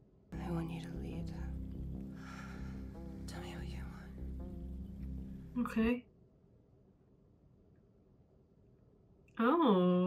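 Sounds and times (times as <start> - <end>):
background music with low notes: 0.3 - 6.0
soft-spoken dialogue: 0.4 - 6.2.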